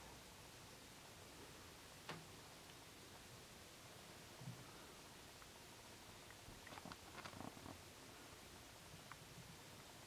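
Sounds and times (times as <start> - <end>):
soft clicks and rustles: 6.2 - 7.8.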